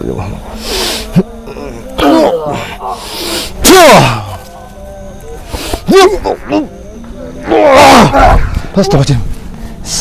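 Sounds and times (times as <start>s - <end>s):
growling roar: 7.3s - 8.7s.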